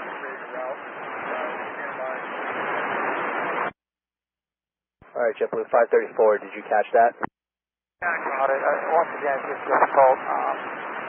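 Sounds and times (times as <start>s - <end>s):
radio static hiss: 0.0s - 3.7s, 8.0s - 11.0s
faint voice over radio: 0.1s - 2.2s, 8.0s - 10.6s.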